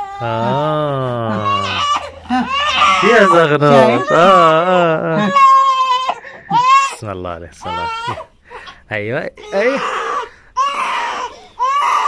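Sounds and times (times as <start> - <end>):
infant crying: 0.0 - 7.0, 7.6 - 8.8, 9.4 - 12.0.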